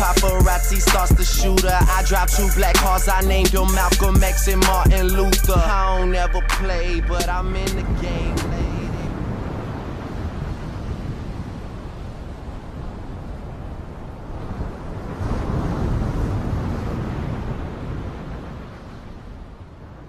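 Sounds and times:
wind on microphone: 6.6s - 20.0s.

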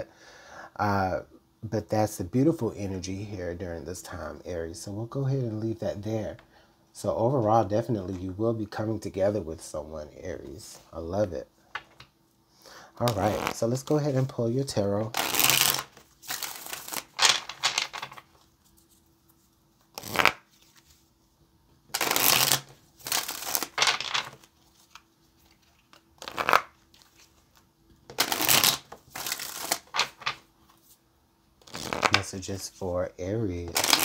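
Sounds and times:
cards being shuffled: 13.0s - 14.3s, 15.1s - 21.1s, 21.9s - 31.0s, 31.6s - 32.8s, 33.6s - 34.0s.

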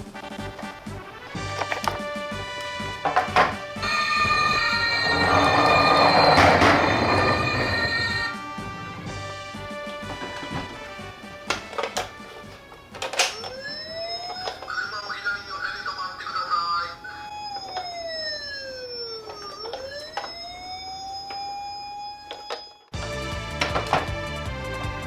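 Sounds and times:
toy electronic siren wailing: 3.8s - 8.4s, 13.0s - 23.0s
handling clicks: 11.4s - 14.8s.

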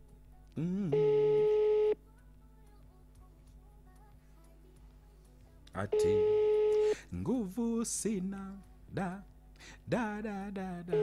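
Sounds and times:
telephone ringback beep: 1.0s - 2.0s, 6.0s - 6.9s.

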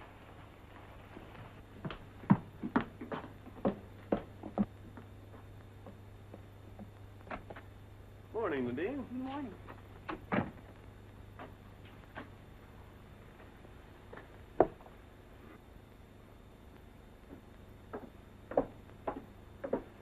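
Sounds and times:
footsteps on wooden floor: 0.7s - 7.7s, 17.3s - 20.0s.

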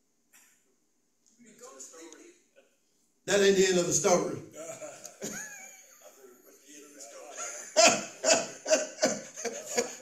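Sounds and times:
man laughing: 4.6s - 6.3s, 7.3s - 10.0s.

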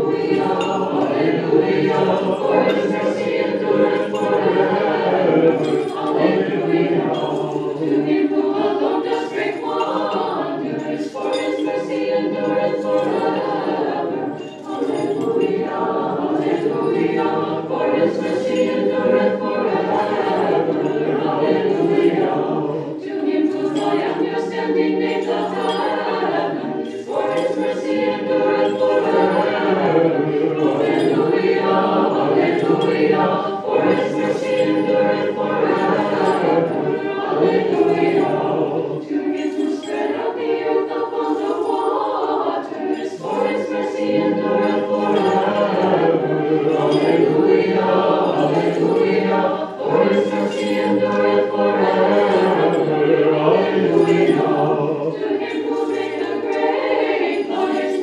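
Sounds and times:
unaccompanied choir chanting: 0.0s - 58.0s.

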